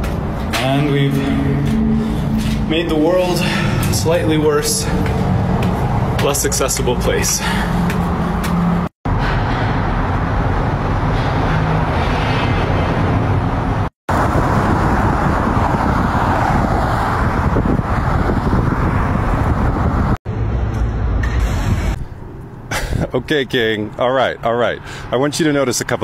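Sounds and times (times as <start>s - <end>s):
road traffic noise: 0.0s - 26.0s.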